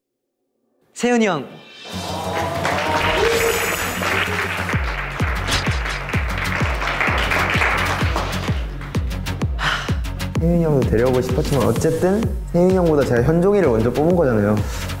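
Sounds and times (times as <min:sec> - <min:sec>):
background music: 0:00.8 - 0:15.0
group clapping and cheering: 0:01.9 - 0:09.6
bass drum beat: 0:04.7 - 0:14.4.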